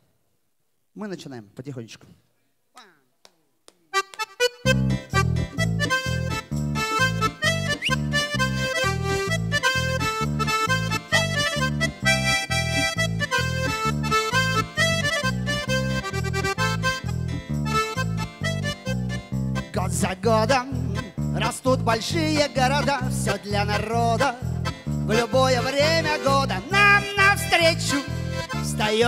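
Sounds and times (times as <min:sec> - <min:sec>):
button accordion: 0:03.9 - 0:29.0.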